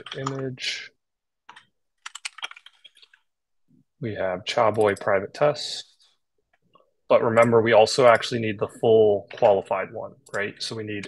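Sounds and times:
computer keyboard typing: 1.5 - 3.2.

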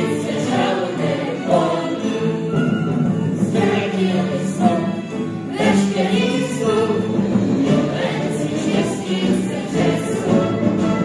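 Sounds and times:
chorus singing: 0.0 - 11.0
instrumental music: 0.0 - 11.0.

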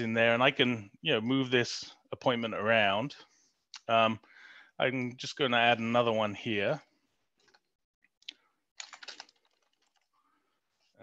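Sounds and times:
keyboard typing: 8.8 - 10.1.

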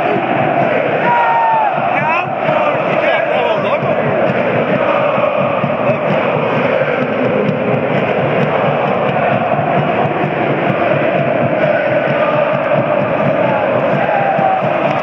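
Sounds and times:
stadium crowd chanting and shouting: 0.0 - 15.0.

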